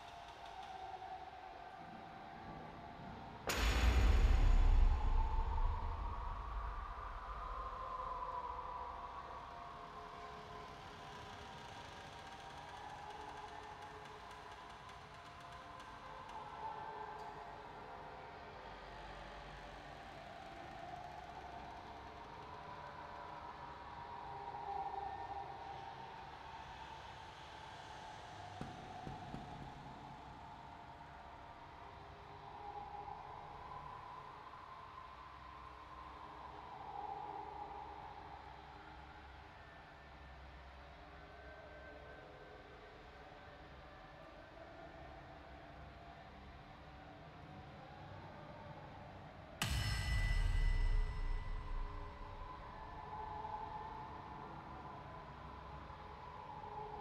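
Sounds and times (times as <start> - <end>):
low hum: 3.5 - 9.1, 49.6 - 53.7.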